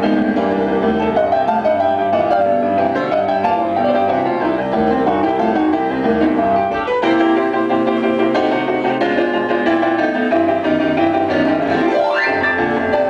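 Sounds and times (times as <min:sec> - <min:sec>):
boogie-woogie piano with band: 0:00.0 - 0:13.0.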